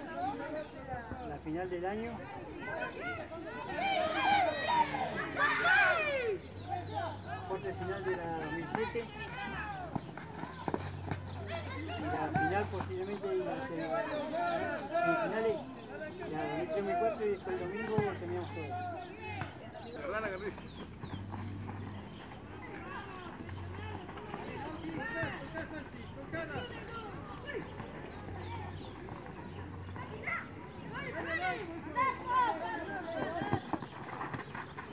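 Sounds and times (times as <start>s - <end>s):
spectators' voices: 0.0s - 20.5s, 22.0s - 34.9s
people shouting: 2.7s - 6.4s.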